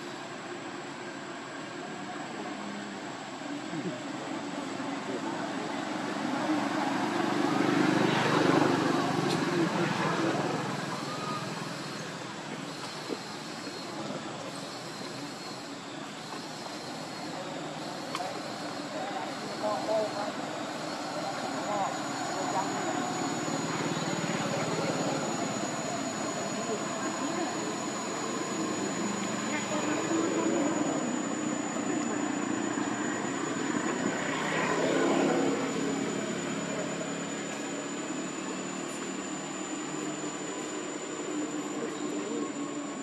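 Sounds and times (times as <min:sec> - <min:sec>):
faint voices: 0:00.0 - 0:43.0
engine passing: 0:05.0 - 0:42.9.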